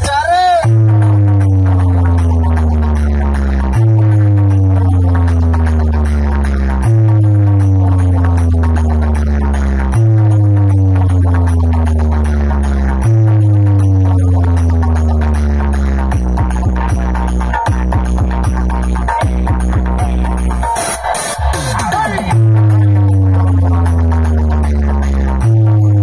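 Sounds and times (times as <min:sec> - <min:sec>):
electronic bass track over speakers: 0:00.0 - 0:26.0.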